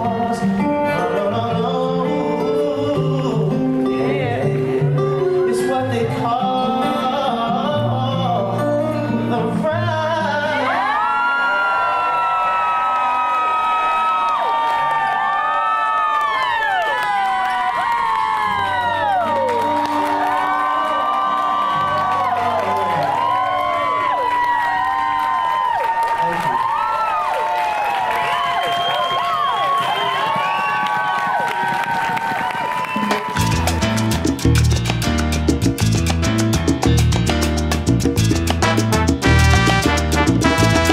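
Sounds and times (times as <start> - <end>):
audience cheering and whooping: 10.6 - 34.6
dance music: 33.0 - 40.9.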